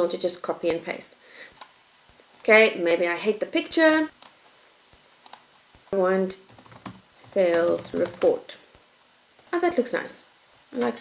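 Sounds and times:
computer mouse clicks: 1.5 - 1.7, 4.2 - 4.4, 5.2 - 5.4.

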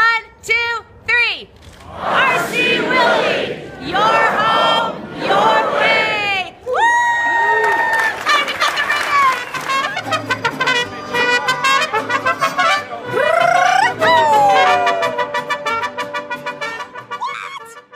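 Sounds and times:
trumpets playing tune: 8.2 - 17.9
strummed guitars: 9.5 - 17.3.

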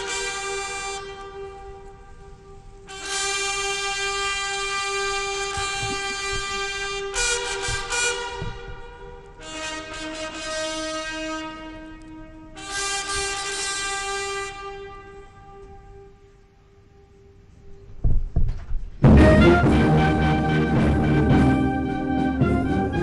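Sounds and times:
brass band playing held chords: 0.0 - 16.4, 19.0 - 23.0.

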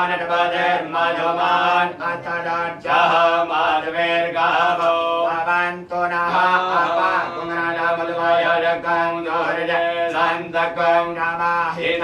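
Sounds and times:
mantra chanting: 0.0 - 12.0.

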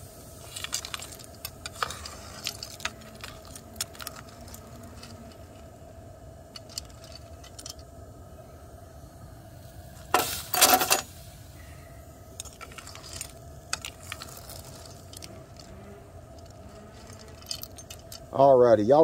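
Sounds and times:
steel ladle scraping and clinking: 0.4 - 5.6, 6.5 - 7.9, 10.1 - 11.2, 12.4 - 18.3
metal clips clattering into tray: 10.2 - 11.1.

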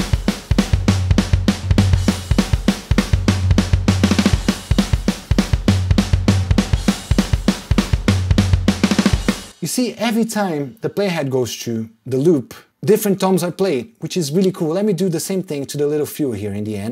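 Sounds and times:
cymbals: 0.0 - 10.7
programmed rock drum loop: 0.0 - 10.8
deep low note: 0.9 - 2.1.

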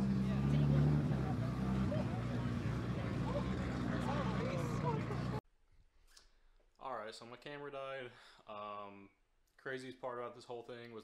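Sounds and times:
car engine idling: 0.0 - 5.4
people talking: 0.0 - 5.4.

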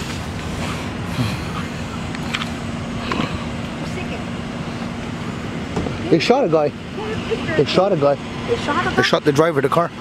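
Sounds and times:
road noise: 0.0 - 10.0
vehicle engines idling: 0.0 - 10.0.

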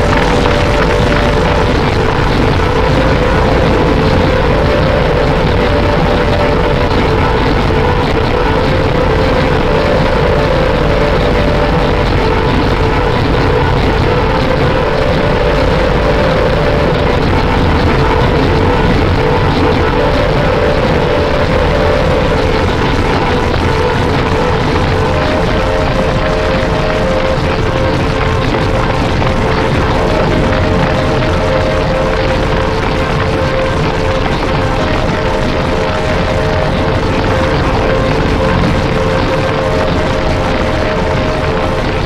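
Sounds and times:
distorted electronic noise: 0.0 - 42.0
wavering drone: 0.0 - 42.0.

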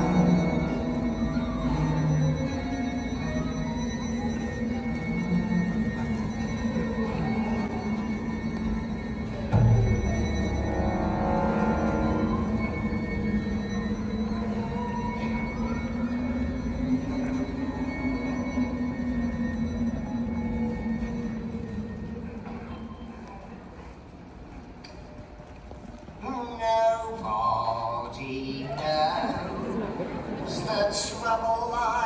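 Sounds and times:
slow orchestral music: 0.0 - 27.4, 29.1 - 32.0.

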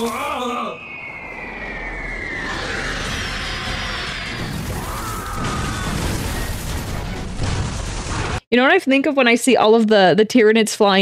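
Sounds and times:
whistle falling in pitch: 0.0 - 3.8
rushing noise: 0.1 - 7.3
low rumble: 0.7 - 7.4.

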